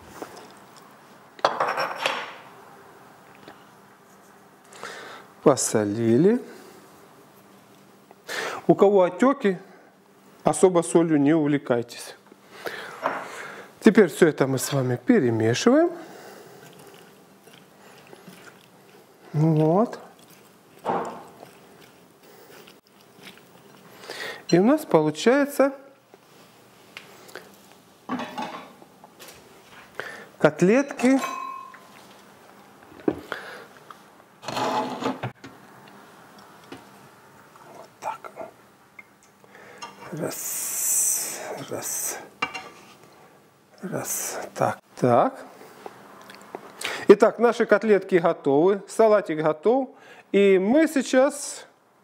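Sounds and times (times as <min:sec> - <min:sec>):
spoon stirring salad in bowl: 0:16.6 - 0:23.9.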